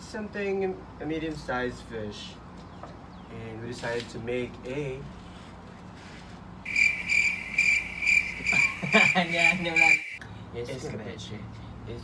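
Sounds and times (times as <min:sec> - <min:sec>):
crickets chirping: 0:06.6 - 0:10.2
people laughing: 0:08.4 - 0:10.0.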